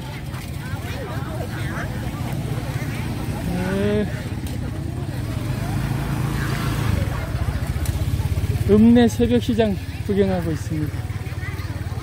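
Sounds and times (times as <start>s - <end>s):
motorbike engine running: 0.0s - 12.0s
voices talking: 0.0s - 12.0s.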